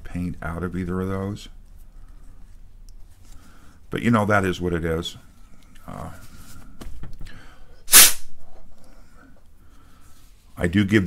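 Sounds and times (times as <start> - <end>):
sharp puff of breath: 7.3 - 8.3.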